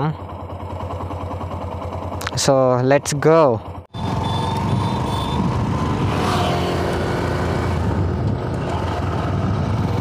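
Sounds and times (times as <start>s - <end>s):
motorcycle engine idling: 0.0s - 5.9s.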